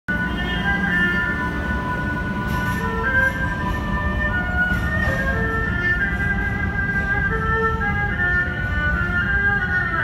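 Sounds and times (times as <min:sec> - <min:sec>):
train wheels squealing on rails: 0:00.2 - 0:10.0.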